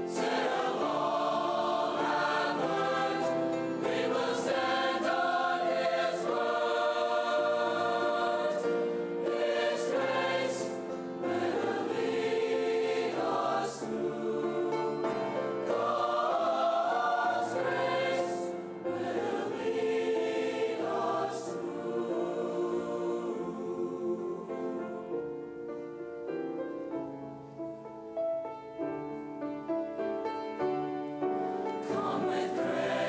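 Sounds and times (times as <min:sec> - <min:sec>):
mixed choir singing a hymn: 0:00.0 - 0:25.6, 0:31.2 - 0:33.0
grand piano accompaniment: 0:00.0 - 0:33.0.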